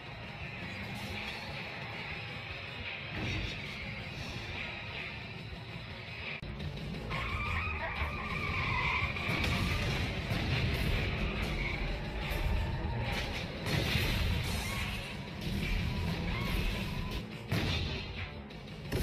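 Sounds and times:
background music: 0:00.0 - 0:19.0
car engines running hard: 0:00.0 - 0:19.0
tires squealing: 0:07.0 - 0:17.4.

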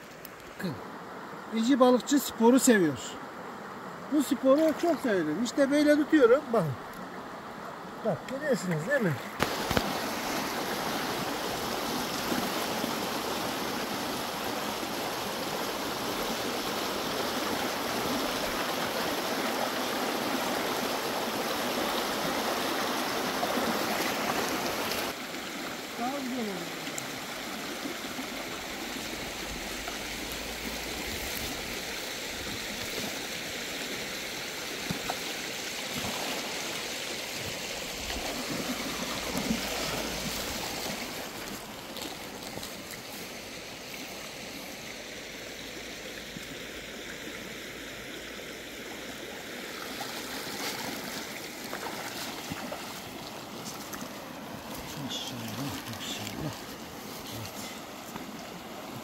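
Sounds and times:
stream rushing over stones: 0:00.0 - 0:59.0.

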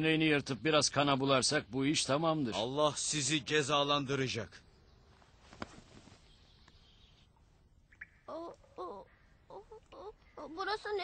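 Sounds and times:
boy whimpering: 0:08.3 - 0:10.6.

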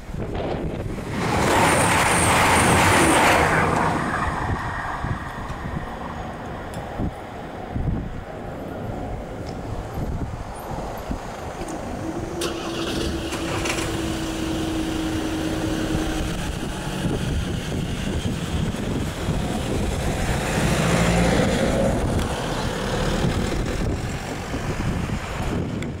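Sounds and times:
car engines pulling away: 0:00.2 - 0:26.0
engine accelerating: 0:00.6 - 0:07.1, 0:11.6 - 0:26.0.

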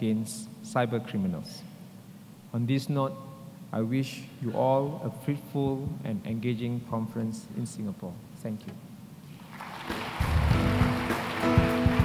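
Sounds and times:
audience applause: 0:09.4 - 0:12.0
low drum beats: 0:10.0 - 0:12.0.

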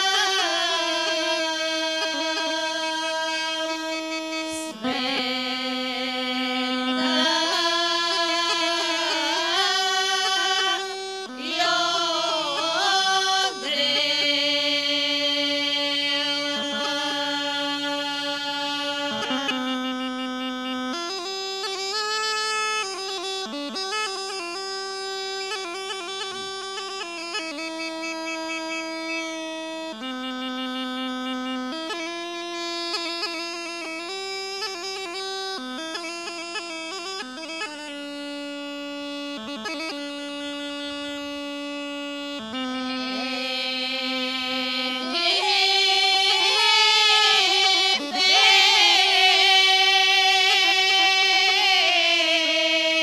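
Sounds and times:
bagpipe drone and melody: 0:00.0 - 0:53.0
woman singing held note: 0:42.8 - 0:52.3.

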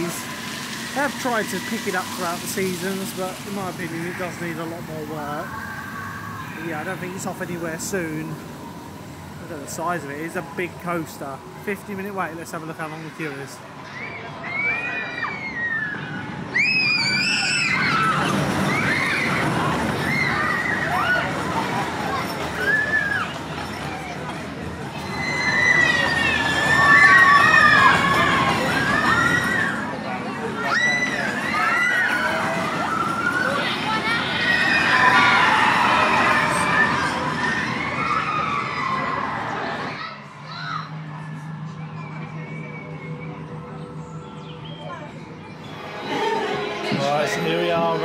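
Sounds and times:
roller coaster rumbling on track: 0:00.0 - 0:48.0
riders screaming: 0:13.9 - 0:24.2, 0:24.9 - 0:30.0, 0:30.6 - 0:40.8.

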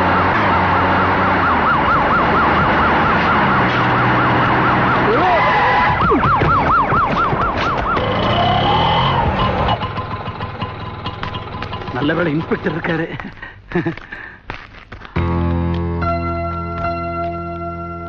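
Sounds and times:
police siren warbling: 0:00.0 - 0:09.9.

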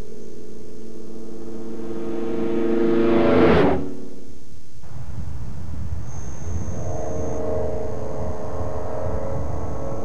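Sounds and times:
airplane engine droning: 0:00.0 - 0:04.3, 0:04.9 - 0:10.0
low rumble: 0:00.0 - 0:10.0.

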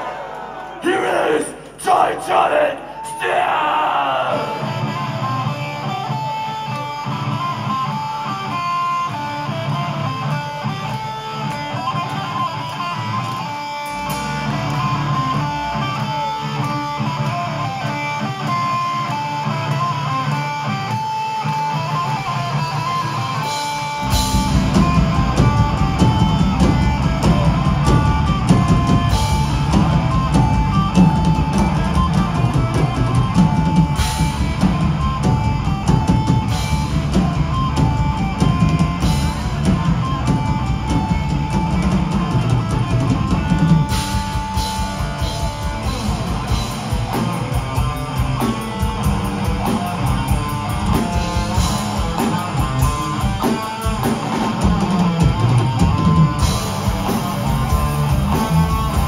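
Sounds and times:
drums: 0:00.0 - 0:59.0
thrash metal band playing: 0:00.8 - 0:59.0
electric guitar melodic line: 0:04.4 - 0:59.0.

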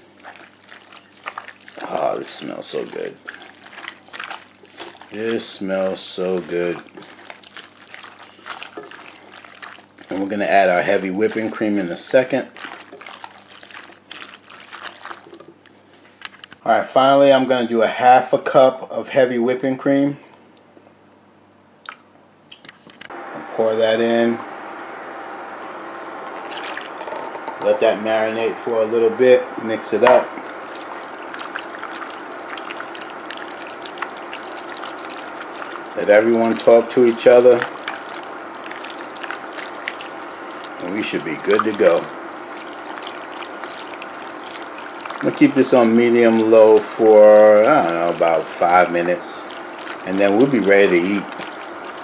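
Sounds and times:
cream pouring into plastic cup: 0:00.0 - 0:15.4, 0:30.4 - 0:52.0
spatula stirring pasta in sauce: 0:00.0 - 0:15.6, 0:30.3 - 0:52.0.

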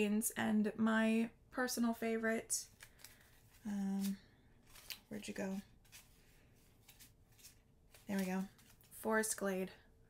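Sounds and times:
faint rustling of thread skeins: 0:02.6 - 0:09.8.

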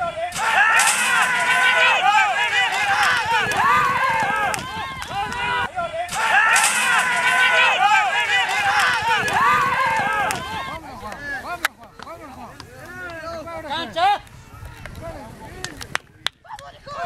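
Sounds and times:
people shouting excitedly: 0:00.0 - 0:11.6, 0:16.5 - 0:17.0
sharp cracks: 0:00.3 - 0:13.2, 0:14.2 - 0:16.7.

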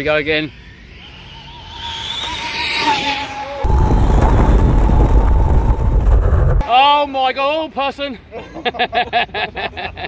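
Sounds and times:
wind rumble on microphone: 0:03.6 - 0:06.6.

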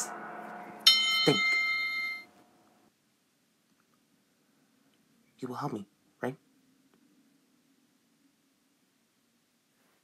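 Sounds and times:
bell-like chime: 0:00.0 - 0:02.4.

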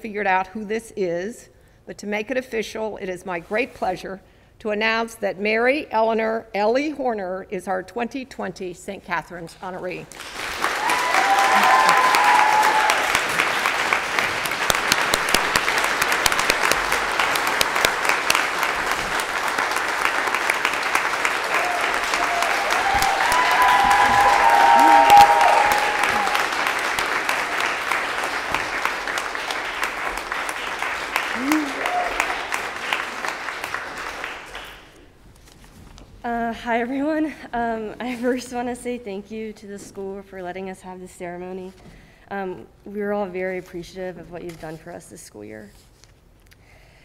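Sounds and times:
crowd applauding: 0:10.1 - 0:35.0
cheering voices: 0:10.7 - 0:13.6, 0:20.7 - 0:29.1, 0:31.2 - 0:32.7.

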